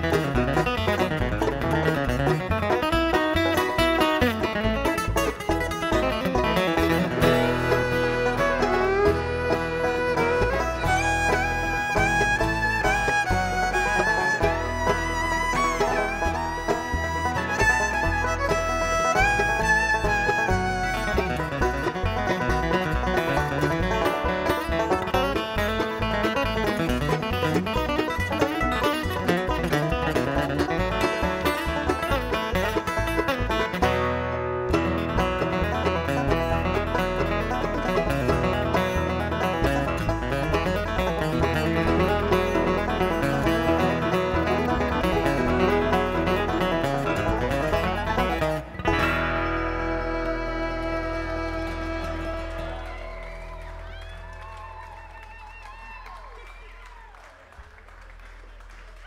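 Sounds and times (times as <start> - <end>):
bluegrass band playing: 0.0 - 54.8.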